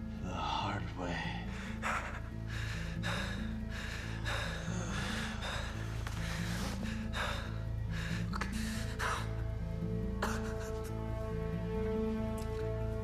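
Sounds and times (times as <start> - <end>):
film score low notes: 0.0 - 13.0
man gasping breaths: 1.4 - 9.4.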